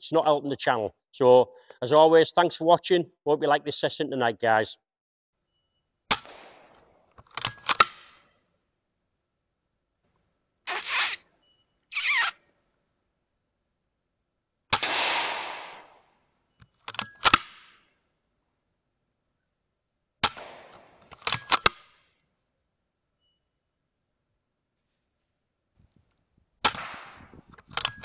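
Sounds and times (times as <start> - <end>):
air rifle shots: 6.1 - 6.8, 14.7 - 16.0, 20.2 - 20.9, 26.6 - 27.4.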